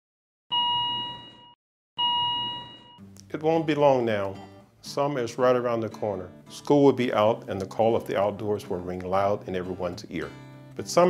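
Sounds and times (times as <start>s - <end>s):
heart monitor beeps: 0.5s - 3.1s.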